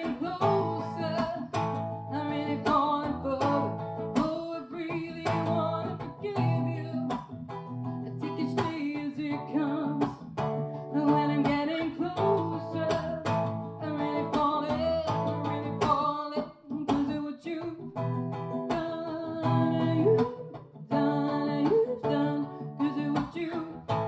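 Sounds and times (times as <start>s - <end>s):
acoustic guitar strumming: 0.0s - 24.0s
woman singing: 0.0s - 24.0s.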